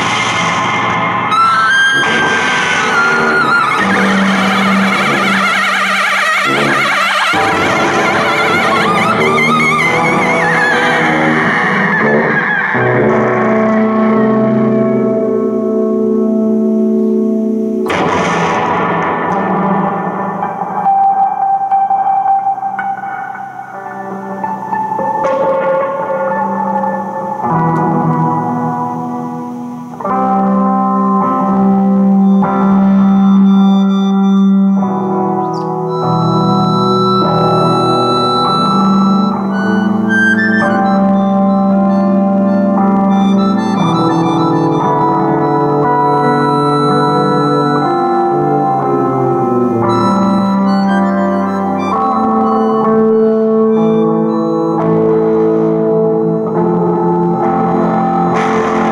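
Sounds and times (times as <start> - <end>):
sudden noisy burst: 0.0 - 14.0, 17.8 - 21.2
accordion chords: 0.0 - 20.2, 34.8 - 58.9
electric guitar with effects: 0.0 - 58.9
tuba chords: 0.0 - 58.9.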